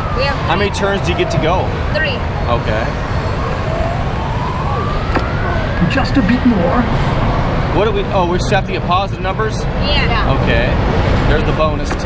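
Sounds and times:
rising electronic tone: 0:00.0 - 0:08.9
busy arcade din: 0:00.0 - 0:12.0.

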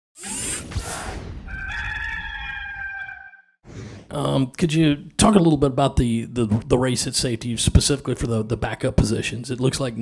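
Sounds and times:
rooster crowing: 0:01.5 - 0:03.6.

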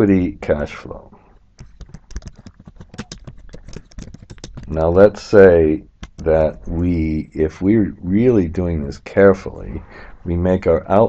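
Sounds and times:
typing on computer keyboard: 0:01.6 - 0:05.2, 0:06.0 - 0:06.3.

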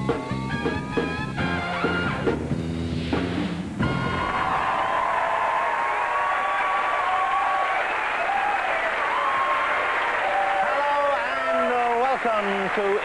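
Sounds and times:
studio audience applauding: 0:03.8 - 0:13.0.

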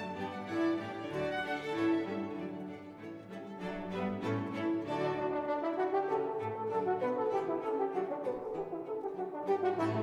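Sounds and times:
string ensemble: 0:00.0 - 0:10.0
french horn solo: 0:05.3 - 0:10.0.

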